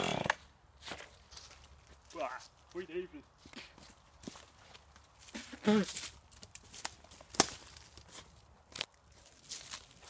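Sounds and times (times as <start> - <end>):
footsteps on dry leaves: 0.8 - 10.0
twig cracking: 5.9 - 10.0.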